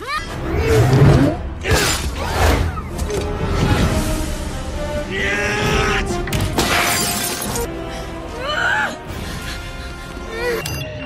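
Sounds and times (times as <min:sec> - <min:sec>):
orchestral score: 0:00.0 - 0:11.0
glass window shattering: 0:06.6 - 0:07.7.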